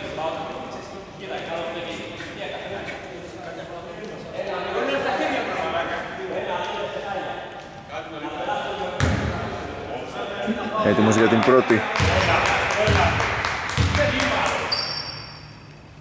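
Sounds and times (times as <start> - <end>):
voices echoing in gymnasium: 0.0 - 16.0
basketball bouncing on court: 9.0 - 9.4, 11.9 - 15.1.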